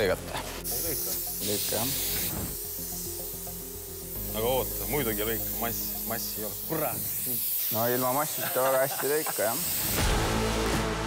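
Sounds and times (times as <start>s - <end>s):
plasma torch air hissing: 0.3s - 10.2s.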